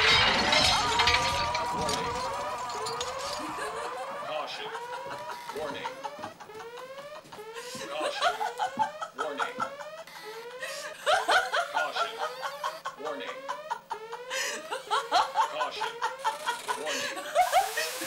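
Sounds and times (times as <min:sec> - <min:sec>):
security alarm rising sweeps: 0:00.0 - 0:18.0
people snickering and laughing: 0:03.2 - 0:18.0.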